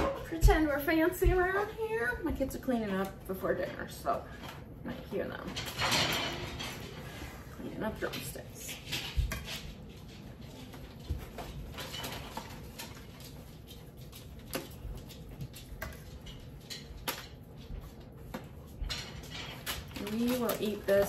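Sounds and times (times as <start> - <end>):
aluminum foil crinkling: 9.0 - 21.0.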